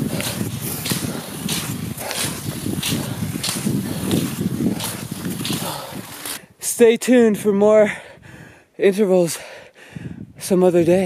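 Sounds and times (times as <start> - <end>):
skis and poles swishing: 0.0 - 6.4
wind rumble on microphone: 0.0 - 6.6, 9.9 - 11.0.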